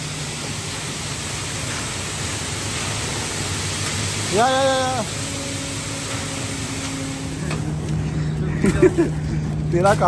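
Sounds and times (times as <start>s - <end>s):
wet concrete pouring down chute: 0.0s - 7.7s
truck engine hum: 0.0s - 10.0s.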